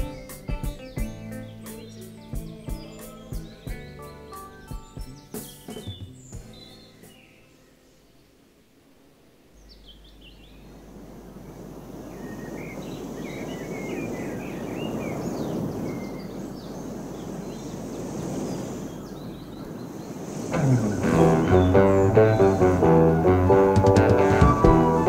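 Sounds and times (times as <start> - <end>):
rock band with guitar and bass: 0.0 - 6.7, 20.6 - 25.0
birds chirping: 0.0 - 8.5, 9.3 - 25.0
wash of noise: 10.0 - 25.0.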